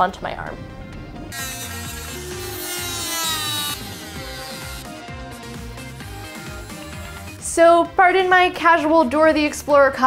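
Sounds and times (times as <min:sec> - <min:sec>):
background music: 0:00.0 - 0:10.0
rotary tool grinding plastic: 0:01.3 - 0:07.5.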